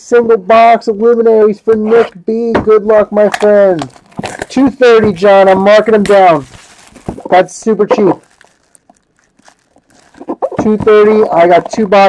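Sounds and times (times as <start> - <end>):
plastic shrink-wrap crinkling: 3.2 - 12.0.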